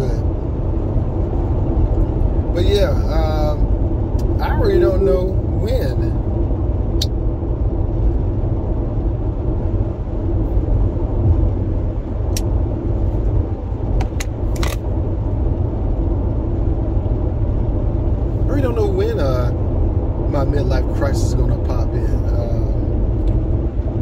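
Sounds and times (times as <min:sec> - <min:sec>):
road and engine rumble in car: 0:00.0 - 0:24.0.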